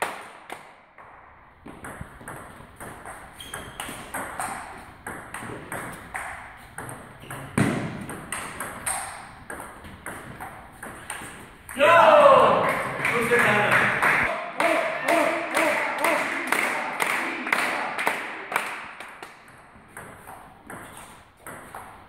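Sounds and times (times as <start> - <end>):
table tennis ball hits: 0.0 - 11.8, 18.2 - 22.0
loud shout: 11.8 - 18.5.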